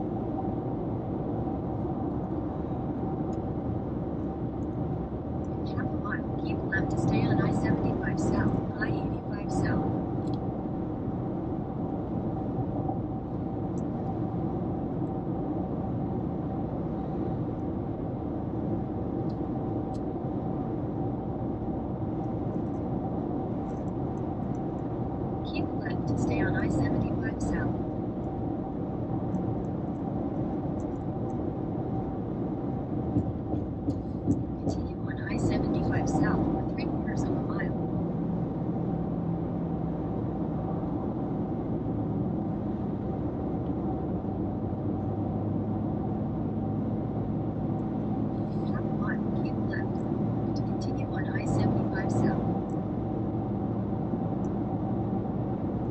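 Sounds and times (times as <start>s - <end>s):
car road and engine noise: 0.0s - 55.9s
low hum: 0.0s - 55.9s.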